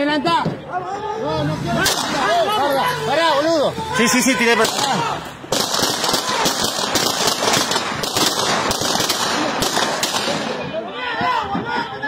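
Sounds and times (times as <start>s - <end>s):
people shouting: 0.0s - 8.1s, 9.0s - 12.0s
rapid gunfire: 4.6s - 10.6s.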